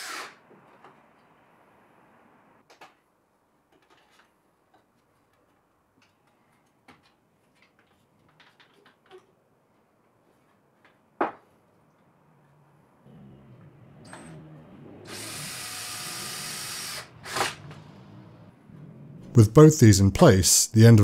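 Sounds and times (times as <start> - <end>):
drill-driver driving a screw: 0.0 - 0.4, 15.1 - 17.7.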